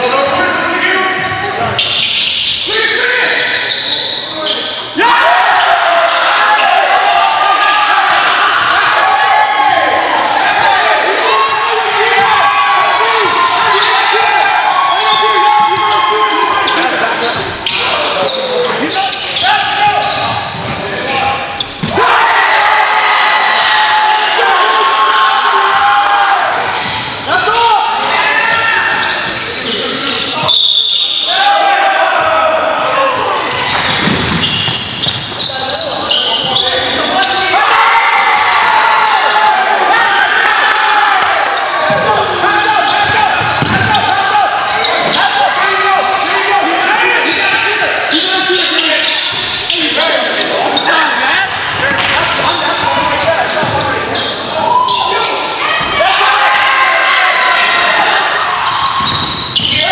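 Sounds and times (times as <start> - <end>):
players' voices echoing: 0.0 - 59.9
basketball bouncing on wooden floor: 43.0 - 44.0, 59.0 - 59.5.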